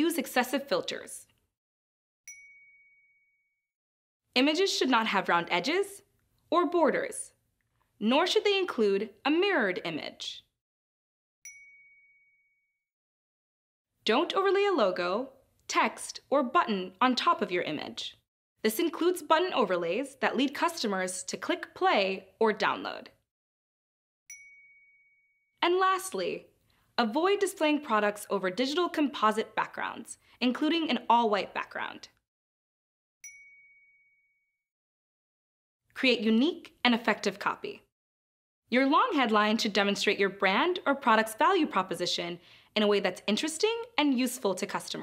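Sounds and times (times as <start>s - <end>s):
chime ding: 2.3s - 3.5s, 11.5s - 12.7s, 24.3s - 25.4s, 33.2s - 34.5s.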